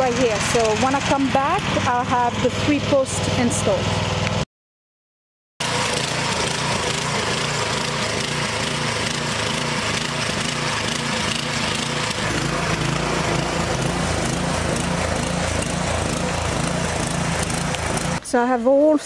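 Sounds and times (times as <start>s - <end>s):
garden tiller engine running: 0.0s - 4.4s, 5.6s - 19.0s.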